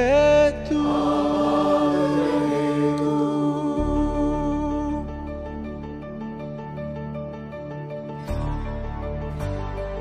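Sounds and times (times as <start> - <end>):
mixed choir singing: 0.6 - 4.6.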